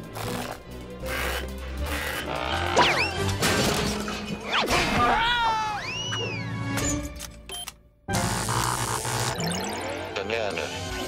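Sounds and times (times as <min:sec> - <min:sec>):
cartoon soundtrack music: 0:00.0 - 0:07.2, 0:08.1 - 0:11.0.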